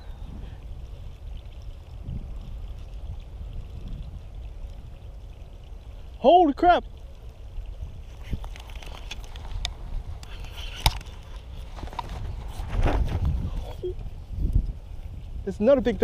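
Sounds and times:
wind buffeting microphone: 0.0s - 6.2s, 6.8s - 16.0s.

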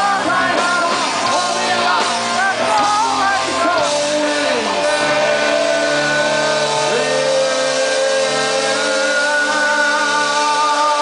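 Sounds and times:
distorted electric guitars chord: 0.0s - 11.0s.

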